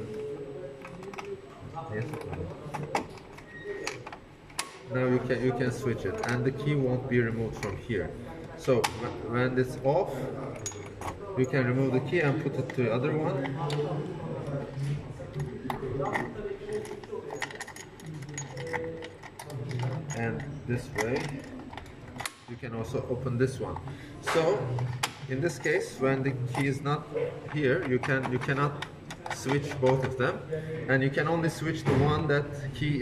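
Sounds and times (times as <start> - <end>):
metal key and lock clicking: 0.8 - 4.9, 10.5 - 14.6, 15.3 - 22.6.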